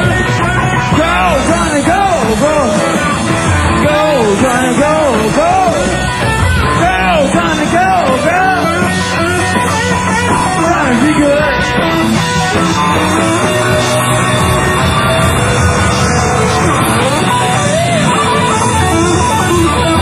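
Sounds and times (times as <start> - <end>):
blues-rock trio playing loud: 0.0 - 20.0
electric guitar string bends: 0.0 - 20.0.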